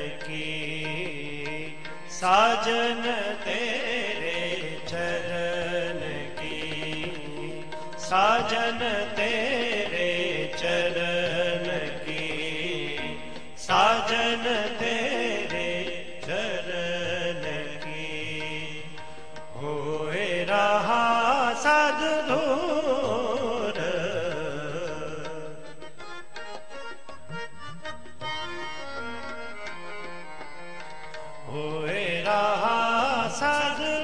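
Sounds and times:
man singing devotional hymn: 0:00.0 - 0:25.9, 0:31.4 - 0:34.0
held accompaniment notes: 0:22.0 - 0:34.0.

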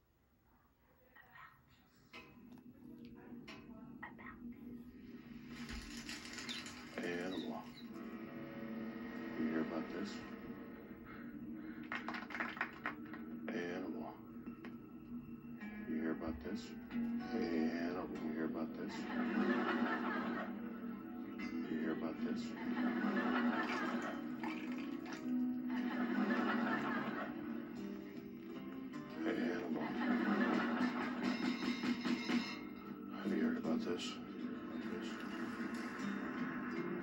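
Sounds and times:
thin television soundtrack music: 0:00.0 - 0:37.0.

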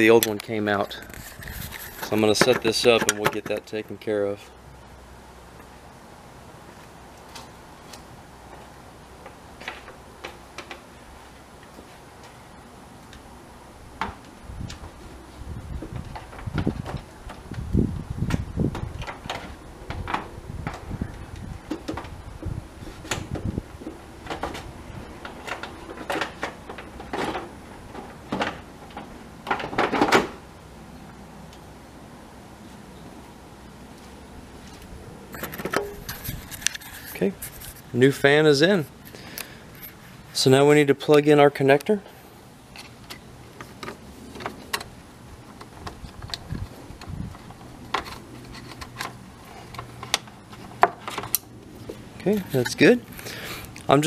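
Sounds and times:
plastic scraping on plastic: 0:00.9 - 0:03.6.

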